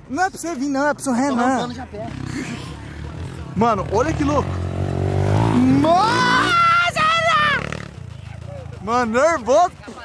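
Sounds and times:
dirt bike engine at low revs: 0:01.9 - 0:10.0
man shouting: 0:05.6 - 0:07.6.

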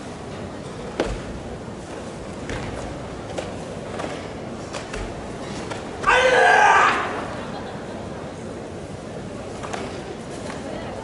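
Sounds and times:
sports hall hum and murmur: 0:00.0 - 0:11.0.

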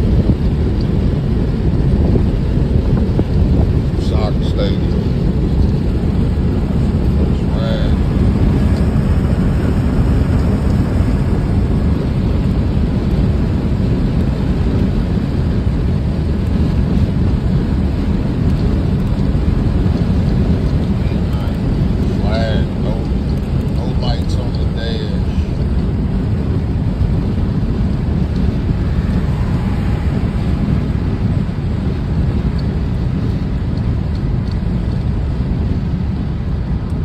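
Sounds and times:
wind and road noise in car: 0:00.0 - 0:37.0.

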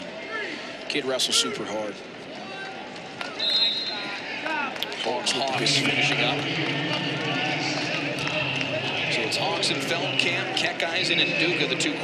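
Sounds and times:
faint arena chatter: 0:00.0 - 0:12.0
high steady whistle tone: 0:03.4 - 0:04.1.

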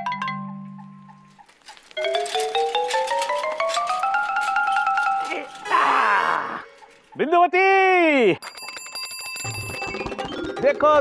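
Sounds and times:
xylophone-like mallet notes: 0:00.0 - 0:01.3, 0:08.4 - 0:11.0
bicycle bell ringing: 0:08.4 - 0:10.3.

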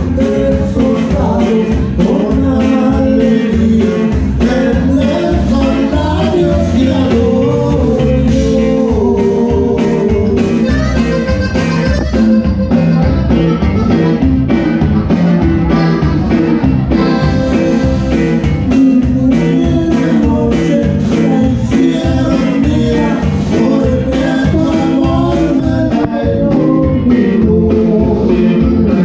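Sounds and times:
accordions playing melody: 0:00.0 - 0:29.0
bass: 0:00.0 - 0:29.0
drum kit beat: 0:00.0 - 0:29.0
guitar: 0:00.0 - 0:29.0.

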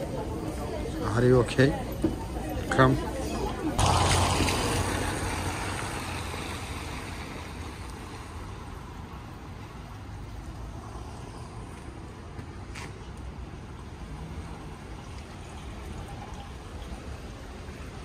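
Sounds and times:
rain hissing on wet street: 0:03.8 - 0:12.4, 0:13.1 - 0:18.0.

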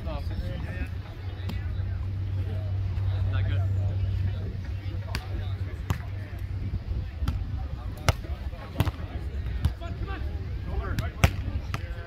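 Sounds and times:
volleyball being slapped: 0:05.1 - 0:06.1.

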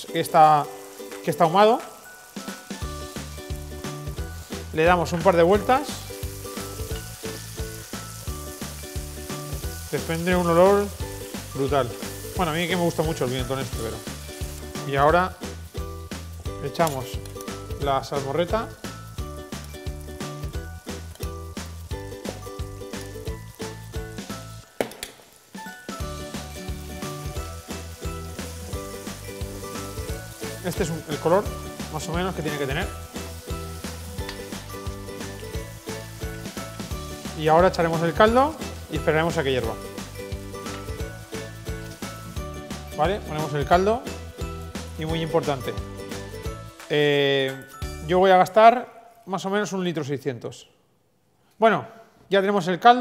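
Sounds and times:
food sizzling in a pot: 0:00.0 - 0:48.0
background music with bass line: 0:02.8 - 0:24.6, 0:25.9 - 0:47.0.

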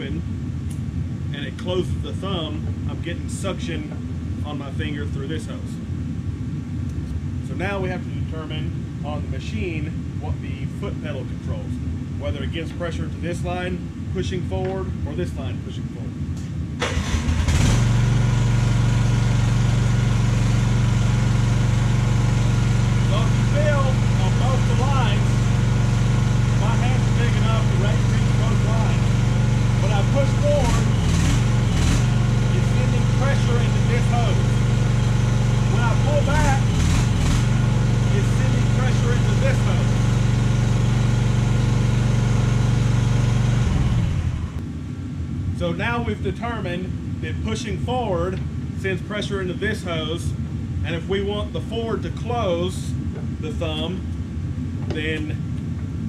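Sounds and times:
excavator engine running: 0:16.8 - 0:44.6.

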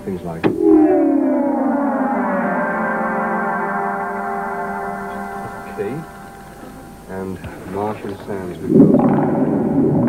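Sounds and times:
synthesizer note sliding down: 0:00.5 - 0:07.2.

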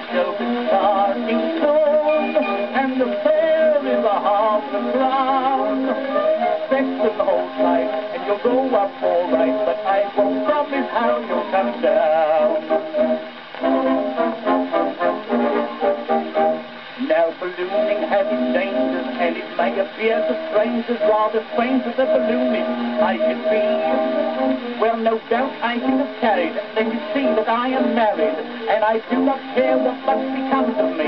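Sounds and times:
band playing on a gramophone record: 0:00.0 - 0:31.0.

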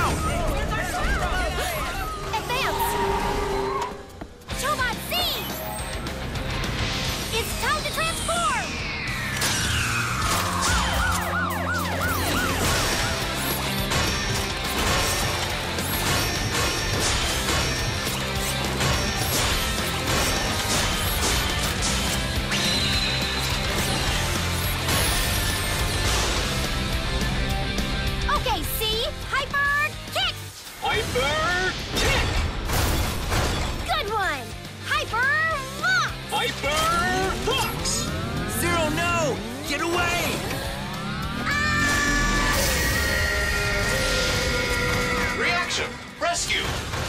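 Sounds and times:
music: 0:00.0 - 0:47.0
chirping whirs: 0:18.0 - 0:26.0.

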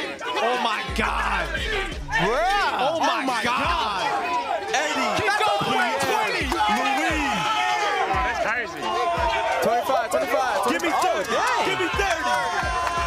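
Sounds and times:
men shouting encouragement: 0:00.0 - 0:13.0.

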